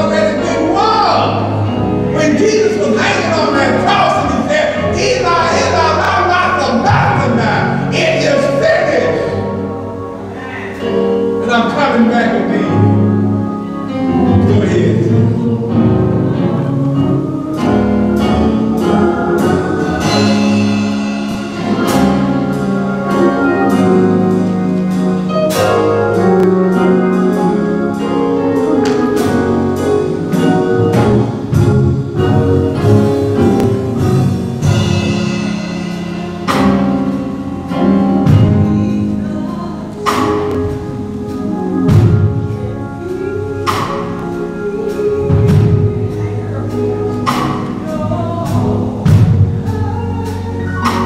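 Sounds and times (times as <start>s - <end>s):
gospel instrumental accompaniment: 0.0s - 51.0s
person singing: 14.3s - 22.2s, 38.2s - 51.0s.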